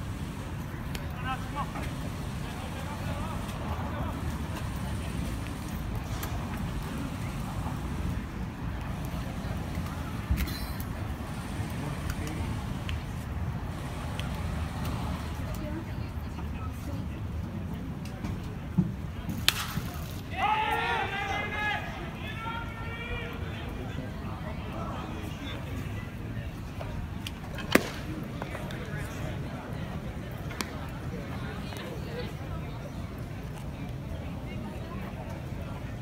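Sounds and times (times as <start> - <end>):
ballpark ambience rumble: 0.0 - 36.0.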